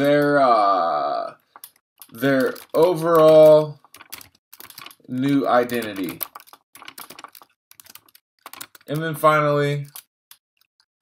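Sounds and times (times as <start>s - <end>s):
computer keyboard typing: 1.4s - 11.0s.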